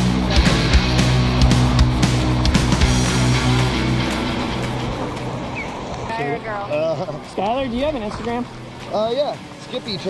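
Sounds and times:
background music: 0.0s - 10.0s
ocean surf washing: 0.0s - 10.0s.

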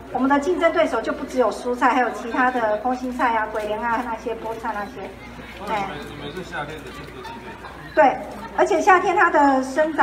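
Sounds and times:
quiet chatter of voices: 0.0s - 10.0s.

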